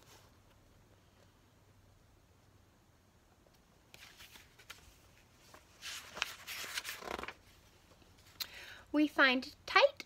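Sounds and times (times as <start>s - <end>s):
book pages rustling: 3.4s - 8.4s.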